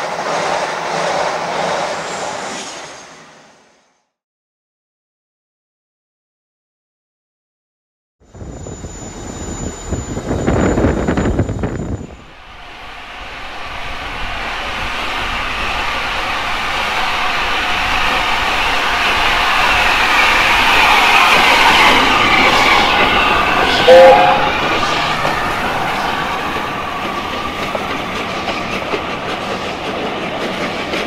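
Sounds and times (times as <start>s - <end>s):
steam locomotive approaching: 0.0s - 3.9s, 8.3s - 31.0s.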